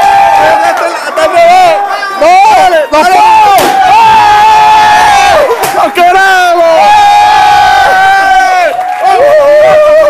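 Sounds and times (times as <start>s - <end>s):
man shouting: 5.8s - 7.2s.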